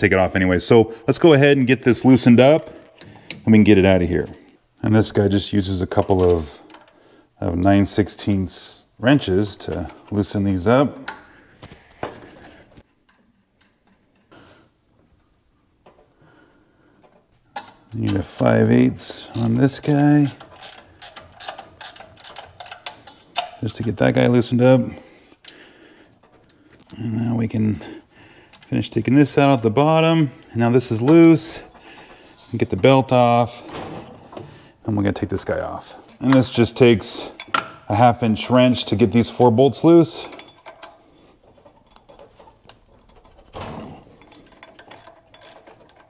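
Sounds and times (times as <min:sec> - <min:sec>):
wrench clicking on bolt: 0:19.3 - 0:23.6, 0:44.3 - 0:46.0.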